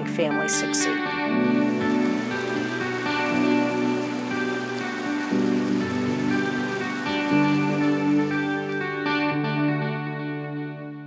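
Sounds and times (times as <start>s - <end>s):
soft instrumental music: 0.0s - 11.0s
water rushing over rapids: 0.4s - 9.0s.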